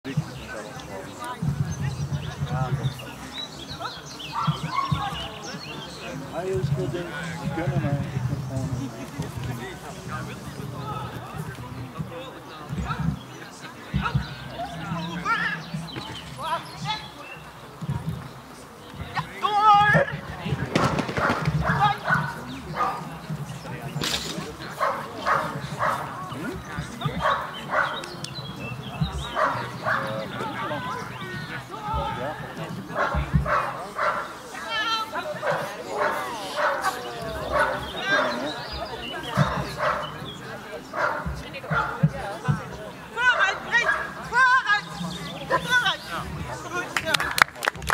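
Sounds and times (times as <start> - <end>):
people talking indistinctly: 0.0 - 47.9
dog barking: 24.8 - 26.1, 27.2 - 28.0, 33.0 - 34.3, 39.4 - 40.1, 41.0 - 41.3.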